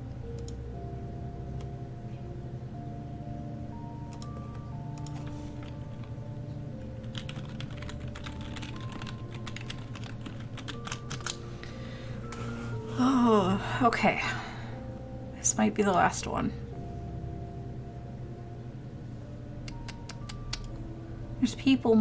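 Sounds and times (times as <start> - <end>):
computer keyboard clicking: 4.1 - 6.1, 7.0 - 11.4, 19.7 - 20.8.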